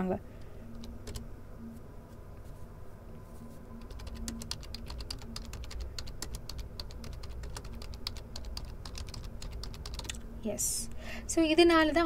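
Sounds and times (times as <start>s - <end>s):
computer keyboard typing: 0.7s - 1.3s, 3.8s - 10.2s.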